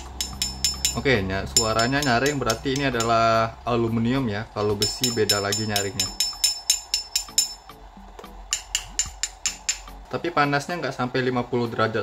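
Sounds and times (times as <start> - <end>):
metal bracket tapping aluminium casing: 0.0 - 3.4, 4.6 - 10.0.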